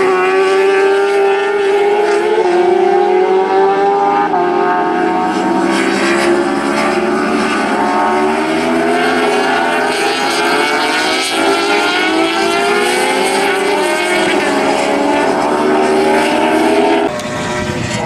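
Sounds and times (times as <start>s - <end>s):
racing motorcycles passing: 0.0s - 18.0s.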